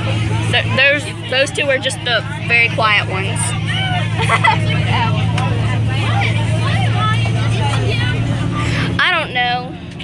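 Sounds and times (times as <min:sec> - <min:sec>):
bus engine drone: 0:00.0 - 0:10.0
children chattering: 0:00.0 - 0:10.0.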